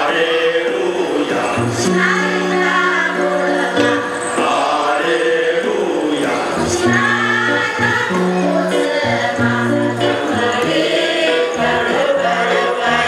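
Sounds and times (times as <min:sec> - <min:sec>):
choir singing in parts: 0:00.0 - 0:13.0.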